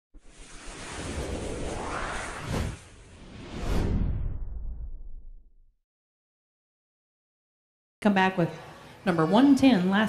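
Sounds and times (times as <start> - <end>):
rushing whoosh with low rumble: 0.2 - 5.7.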